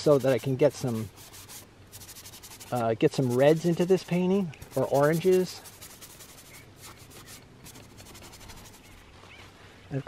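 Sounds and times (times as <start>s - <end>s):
brush rubbing on painting panel: 0.0s - 9.0s.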